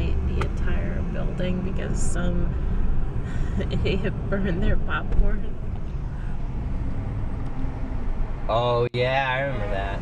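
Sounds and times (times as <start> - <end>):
car interior road and engine noise: 0.0 - 10.0.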